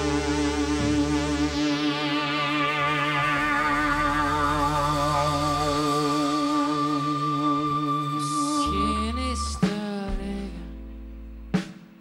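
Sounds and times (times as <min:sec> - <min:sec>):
rock band sustained chord: 0:00.0 - 0:09.7
low bass note: 0:00.0 - 0:11.6.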